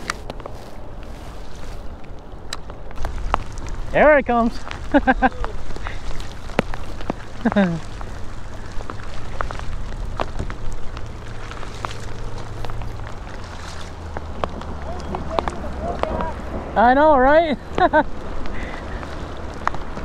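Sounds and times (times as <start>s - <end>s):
raindrops clicking on kayak: 0.0s - 20.0s
heavy rain on water: 1.1s - 20.0s
low rumble: 2.8s - 20.0s.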